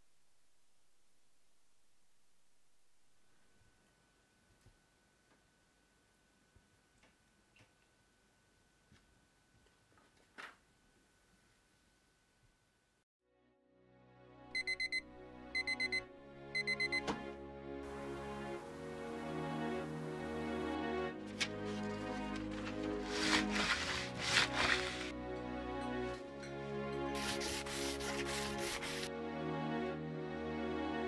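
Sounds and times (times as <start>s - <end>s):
soft background music: 13.5s - 31.0s
alarm clock beeping: 14.6s - 15.0s, 15.6s - 17.1s
wood being hand-sanded: 22.8s - 25.1s, 27.2s - 29.1s.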